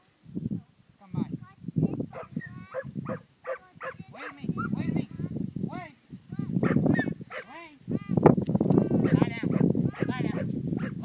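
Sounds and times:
dog barking: 2.1s - 4.8s, 6.6s - 7.5s, 9.0s - 11.0s.

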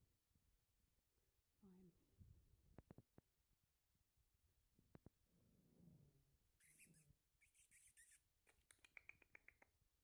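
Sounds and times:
rapid small clicks: 8.5s - 9.8s.

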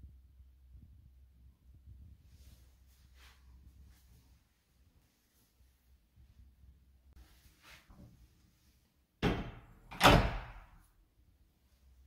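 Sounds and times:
sliding door knocking and banging: 9.2s - 10.6s.

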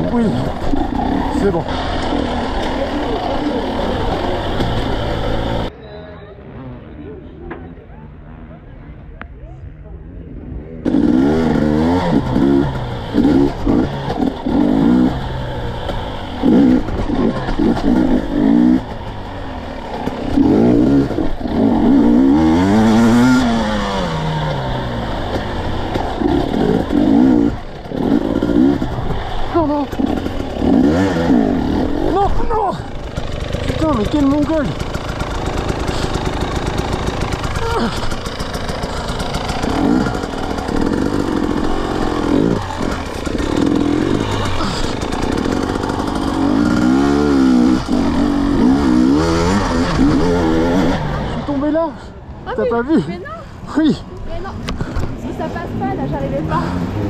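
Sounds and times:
dirt bike engine revving: 0.0s - 5.7s, 10.8s - 53.2s, 54.3s - 57.0s.

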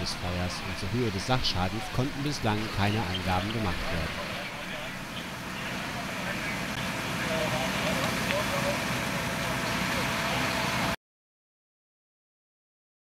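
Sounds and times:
faint voices talking: 0.0s - 11.0s
fire engine motors running: 0.0s - 11.0s.

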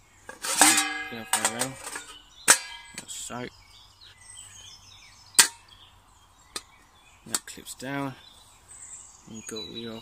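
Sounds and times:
metal mess kit parts knocking: 0.3s - 3.1s.

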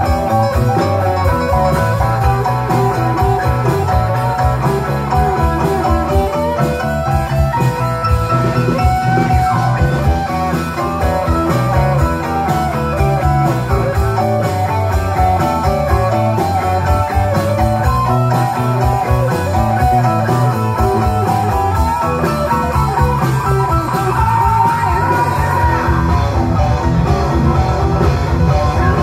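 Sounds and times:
drums: 0.0s - 29.0s
electric guitar: 0.0s - 29.0s
keyboards: 0.0s - 29.0s
person singing: 23.8s - 26.3s.

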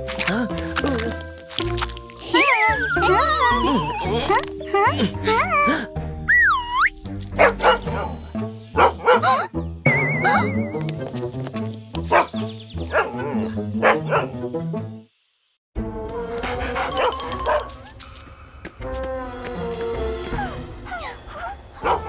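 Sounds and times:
bouncy background music: 0.0s - 15.0s, 17.0s - 17.8s
cartoon dog barking: 8.8s - 9.5s, 12.1s - 14.4s.

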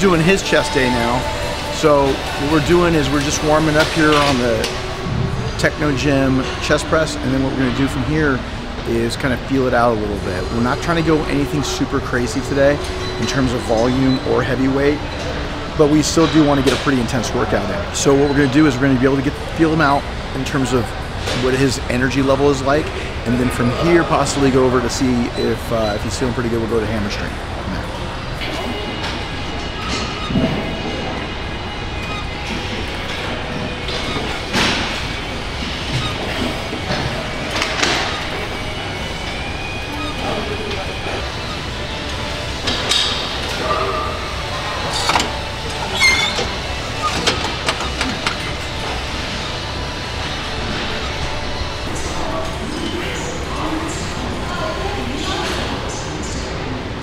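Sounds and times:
indistinct voices: 0.0s - 57.0s
steady background din: 0.0s - 57.0s
gym equipment clanks and knocks: 42.6s - 49.0s.

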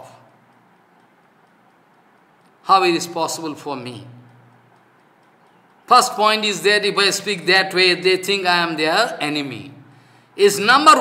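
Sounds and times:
man lecturing: 2.7s - 4.3s, 5.9s - 11.0s.

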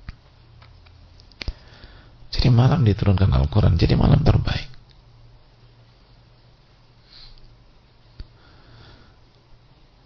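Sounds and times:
faint low steady hum: 0.0s - 10.0s.

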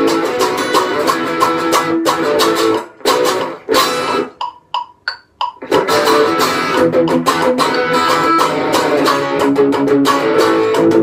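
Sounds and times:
electric guitar strumming: 0.0s - 11.0s
high guitar notes: 0.0s - 11.0s.

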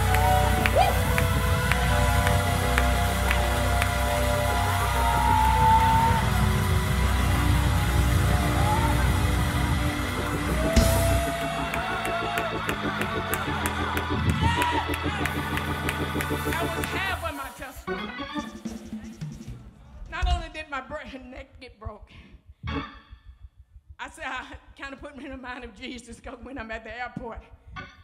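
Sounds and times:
gospel band playing: 0.0s - 19.7s.

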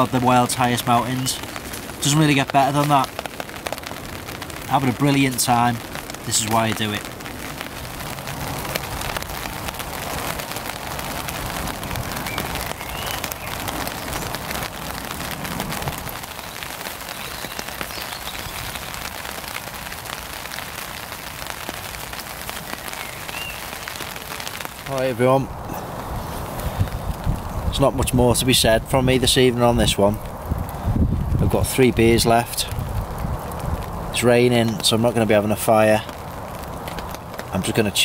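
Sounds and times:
rain pattering on nylon tarp: 0.0s - 38.0s.

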